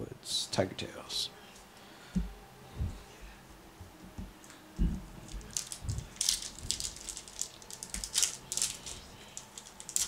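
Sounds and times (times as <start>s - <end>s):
foil wrapper crinkling and tearing: 5.3s - 10.0s.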